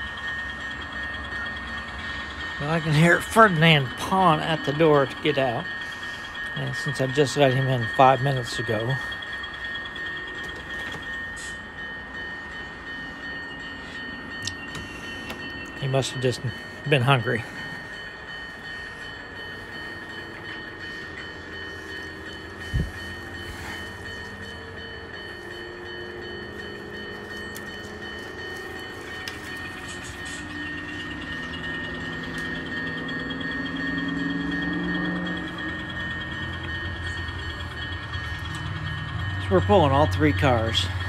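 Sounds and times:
model locomotive running: 0:00.0 - 0:41.0.

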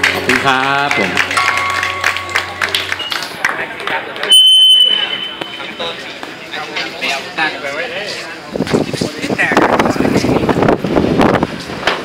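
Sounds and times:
audience clapping: 0:00.0 - 0:04.3.

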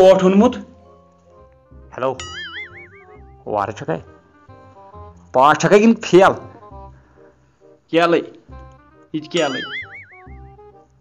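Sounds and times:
quiet background music: 0:00.0 - 0:11.0
cartoon boing sound effect: 0:02.3 - 0:03.2, 0:09.5 - 0:10.4.

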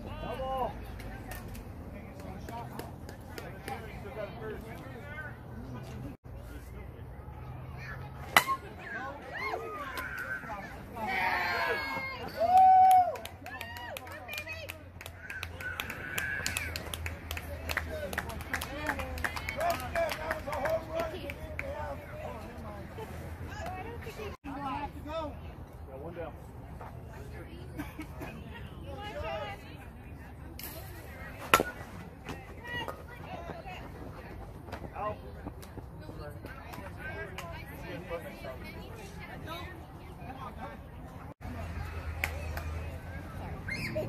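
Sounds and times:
bat hitting ball crack: 0:31.4 - 0:31.9.

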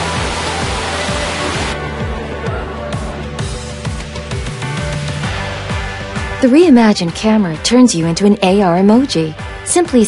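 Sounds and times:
rain rushing: 0:00.0 - 0:01.8
music with deep beat: 0:00.0 - 0:06.4.

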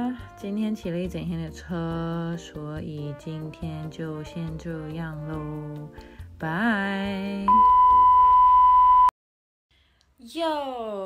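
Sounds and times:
test tone beep: 0:07.5 - 0:09.1.

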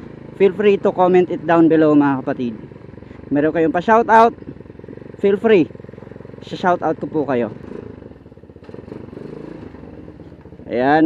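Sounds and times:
motorcycle engine at low revs: 0:00.0 - 0:11.0.

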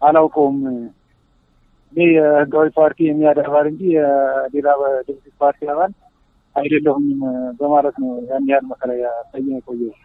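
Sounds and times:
man talking: 0:00.0 - 0:00.9, 0:01.9 - 0:05.9, 0:06.6 - 0:10.0.

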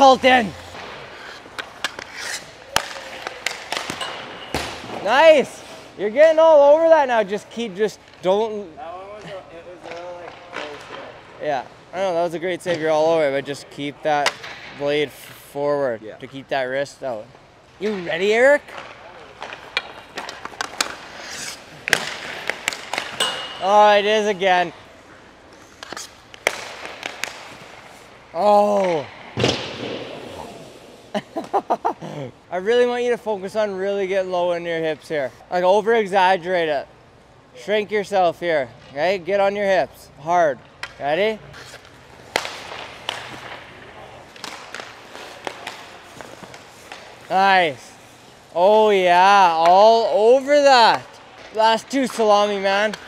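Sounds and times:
skate blades scraping ice: 0:00.2 - 0:04.0, 0:19.4 - 0:24.0, 0:41.5 - 0:48.9
hockey puck clicks and knocks: 0:00.3 - 0:05.0, 0:14.2 - 0:14.8, 0:17.8 - 0:24.3, 0:25.5 - 0:27.9, 0:40.6 - 0:47.8, 0:49.5 - 0:53.0.

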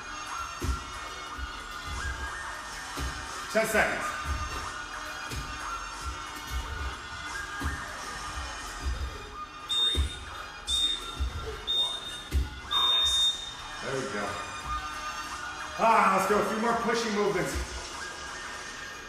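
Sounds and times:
thuds of landings on gym mats: 0:02.8 - 0:03.4, 0:12.2 - 0:12.7
digital timer beeping: 0:09.7 - 0:13.7.

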